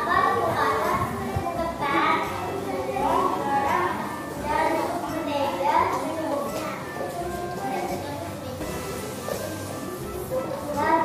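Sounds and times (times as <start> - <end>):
girl speaking into a microphone: 0.0 - 8.8, 10.5 - 11.0
children's voices: 0.0 - 9.3, 10.1 - 11.0
music: 0.0 - 11.0.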